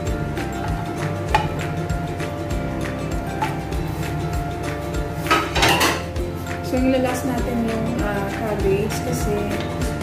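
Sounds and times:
background music with steady beat: 0:00.0 - 0:10.0
utensil clattering against pot: 0:05.3 - 0:06.1.

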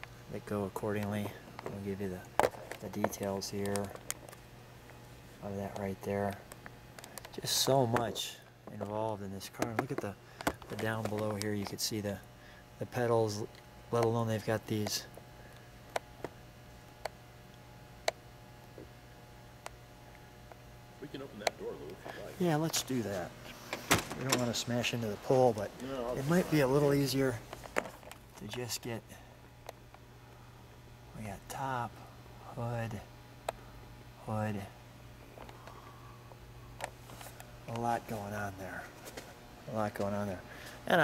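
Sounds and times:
steady low hum: 0:00.0 - 0:41.0.

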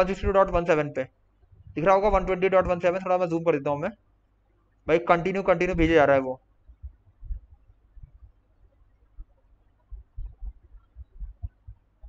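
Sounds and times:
soft low thumps: 0:00.0 - 0:00.8, 0:01.5 - 0:03.0, 0:05.6 - 0:12.0.

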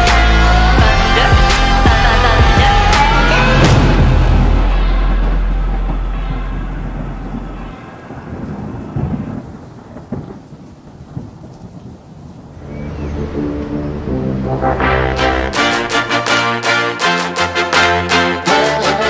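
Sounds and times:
music: 0:00.0 - 0:07.8, 0:12.6 - 0:19.0
music with brass: 0:00.0 - 0:07.9, 0:12.9 - 0:19.0
low thunder rumble: 0:01.9 - 0:16.0
rain: 0:03.1 - 0:17.4
sharp thunder cracks: 0:03.5 - 0:16.1.

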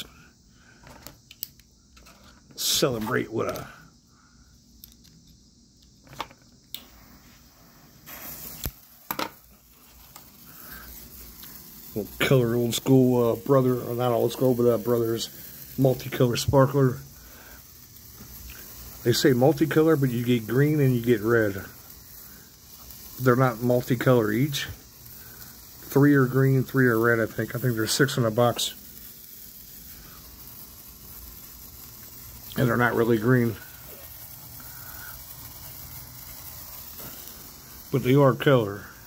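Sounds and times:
sparkler fizzing hiss: 0:00.0 - 0:39.0.

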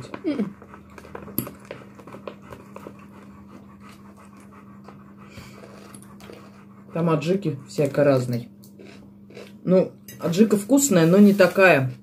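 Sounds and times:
dog panting: 0:00.0 - 0:08.5.

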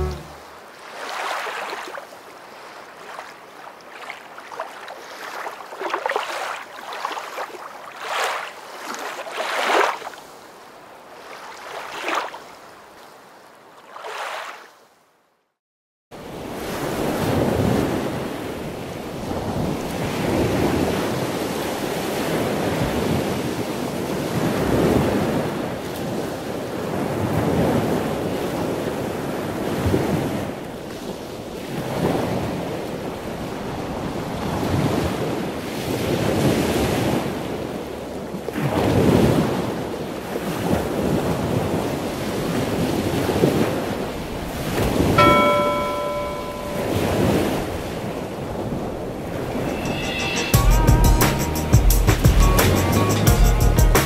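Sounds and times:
bell-like ringing tone: 0:00.0 - 0:00.5, 0:45.2 - 0:47.6, 0:49.5 - 0:50.8
waves breaking: 0:00.0 - 0:14.9, 0:16.2 - 0:50.3
wind: 0:00.0 - 0:53.3.

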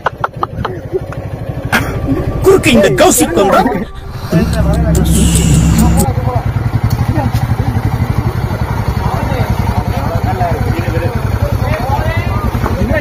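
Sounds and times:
motorcycle engine running: 0:00.0 - 0:13.0
men talking: 0:01.7 - 0:06.6.

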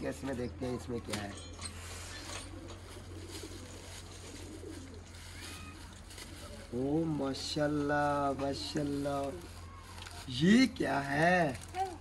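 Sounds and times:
dove cooing: 0:02.2 - 0:07.9
plastic bag crinkling: 0:02.8 - 0:06.9, 0:08.1 - 0:12.0.

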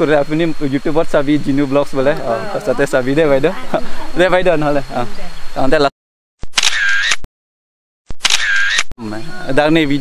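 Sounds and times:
man's voice: 0:00.0 - 0:05.1, 0:09.0 - 0:10.0
camera shutter sound effect: 0:06.4 - 0:07.3, 0:08.1 - 0:08.9.

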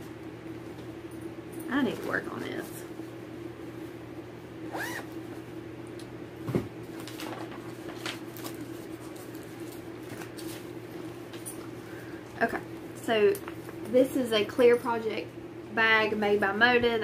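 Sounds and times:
steady low hum: 0:00.0 - 0:17.0
zipper being worked: 0:04.7 - 0:05.1
plastic bag rustling: 0:06.9 - 0:11.1.

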